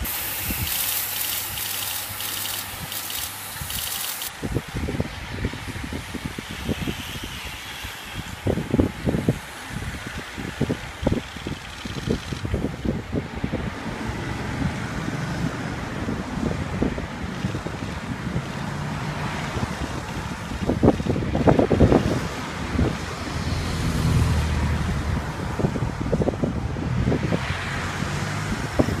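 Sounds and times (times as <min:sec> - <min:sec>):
bicycle tyres whooshing past: 0:00.0 - 0:13.0
wind buffeting microphone: 0:00.0 - 0:29.0.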